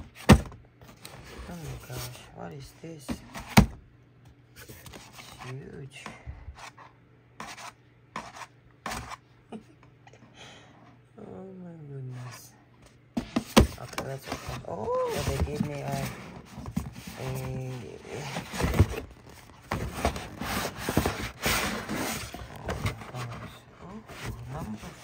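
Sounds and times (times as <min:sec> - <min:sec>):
paper envelope rustling and scraping: 0:04.6 - 0:05.6, 0:13.2 - 0:25.0
wordless voice sounds: 0:17.1 - 0:18.5.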